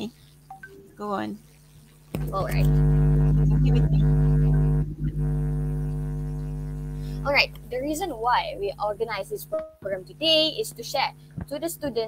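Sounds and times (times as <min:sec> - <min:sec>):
electrical buzz: 0:01.9 - 0:12.0.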